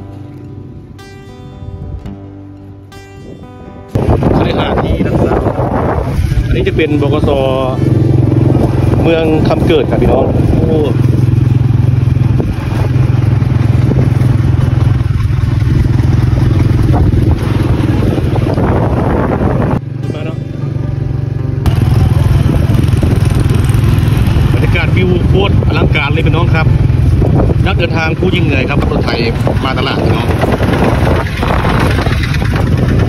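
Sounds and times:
vehicle engine and road noise: 0.0 - 33.0.

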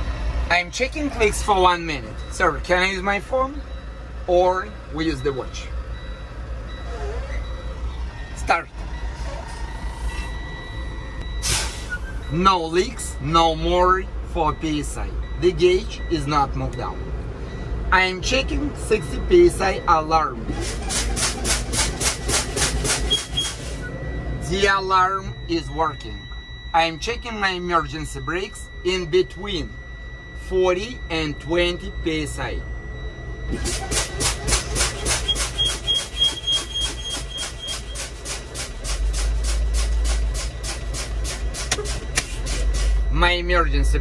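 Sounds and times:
diesel engine idling: 0.0 - 44.0
truck air brakes hissing: 11.4 - 12.2, 20.5 - 24.0, 33.5 - 43.1.

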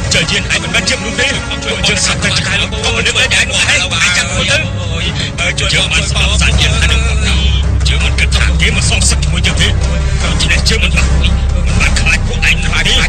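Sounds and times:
deep steady rumble: 0.0 - 13.0
film music: 0.0 - 13.0
voices: 0.0 - 13.0.

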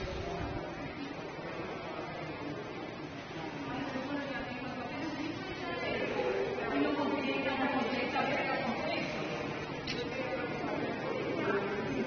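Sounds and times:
steady background din: 0.0 - 12.0.

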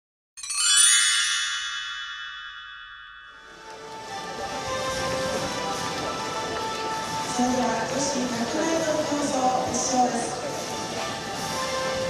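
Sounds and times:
bright chime ringing: 0.4 - 4.9
stadium crowd murmur: 4.0 - 12.0.

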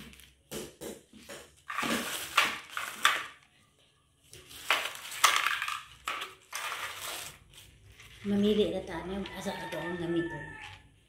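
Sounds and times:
plastic clattering on tile floor: 0.0 - 3.6, 4.2 - 8.5.

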